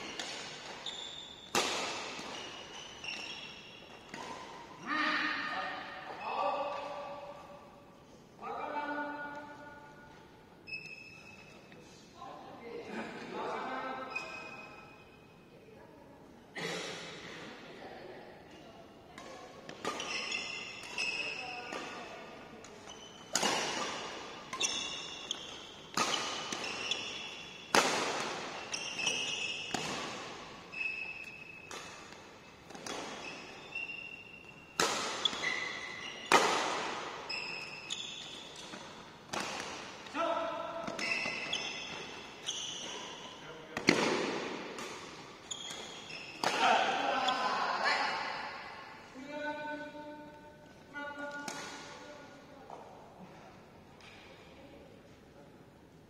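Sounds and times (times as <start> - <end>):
shoes squeaking on court: 0.0 - 4.6, 10.6 - 12.0, 14.1 - 15.3, 19.3 - 40.1, 40.8 - 47.7
rackets hitting shuttlecock: 0.0 - 4.7, 19.1 - 47.5, 51.2 - 52.1.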